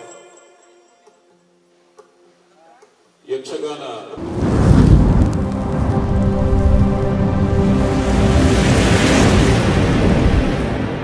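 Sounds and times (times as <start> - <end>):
deep rumble: 4.2 - 11.0
sustained drone of held tones: 5.3 - 9.2.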